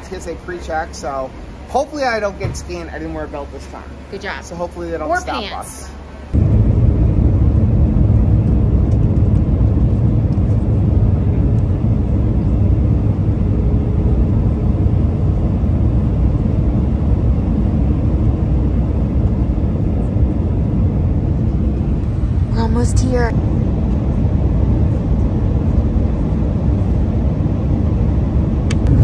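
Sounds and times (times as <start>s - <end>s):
airliner engines rumbling in cabin: 0.0s - 29.0s.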